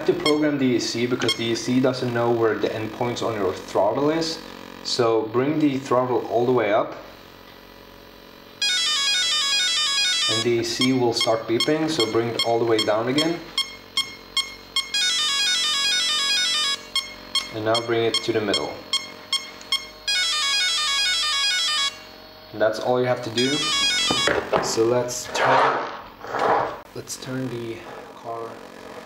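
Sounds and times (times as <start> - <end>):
motor confirmation beeps: 0.0 - 6.6, 8.5 - 22.2, 23.2 - 24.5.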